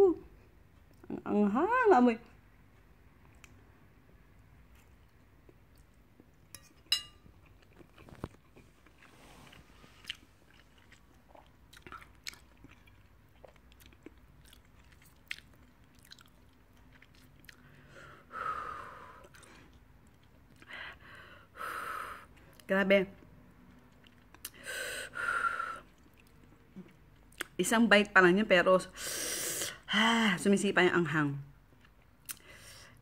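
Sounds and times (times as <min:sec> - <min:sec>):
person chewing noodles: 0:07.2 - 0:18.0, 0:19.0 - 0:20.7, 0:23.6 - 0:24.6, 0:25.8 - 0:27.5, 0:31.8 - 0:32.7.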